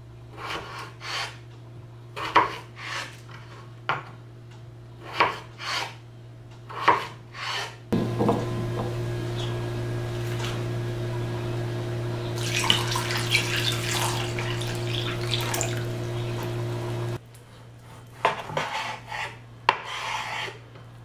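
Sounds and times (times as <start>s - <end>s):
low steady hum: 7.9s - 17.4s
knife knocking on wooden board: 8.0s - 8.9s
water pouring and splashing: 10.2s - 10.6s, 12.3s - 17.2s.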